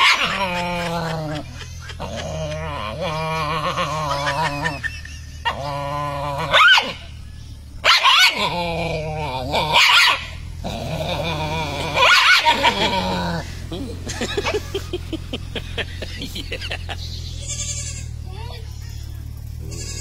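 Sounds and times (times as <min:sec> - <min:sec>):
dogs growling and barking: 0:00.0 - 0:17.0.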